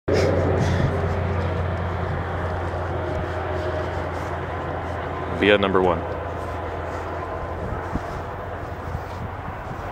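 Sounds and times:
diesel train rumbling: 0:00.1 - 0:09.9.

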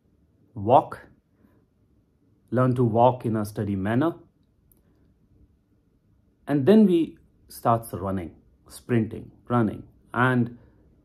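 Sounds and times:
man speaking: 0:00.6 - 0:01.2, 0:02.5 - 0:04.3, 0:06.5 - 0:10.7.

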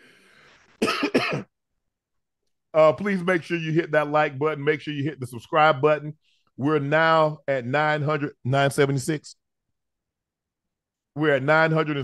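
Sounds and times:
man coughing: 0:00.8 - 0:01.6.

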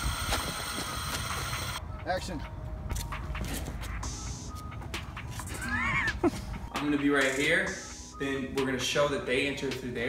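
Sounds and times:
faint background music: 0:01.8 - 0:10.0
person laughing high-pitched: 0:05.5 - 0:06.6.

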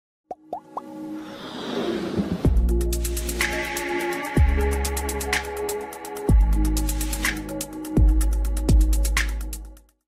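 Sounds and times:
quick pops rising in pitch: 0:00.3 - 0:00.9.

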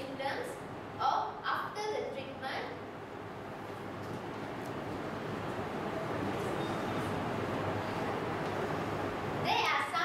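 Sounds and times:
rumbling background noise: 0:00.0 - 0:10.0.

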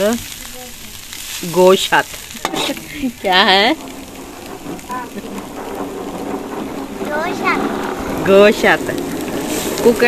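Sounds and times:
food sizzling in a pan: 0:00.0 - 0:10.0.

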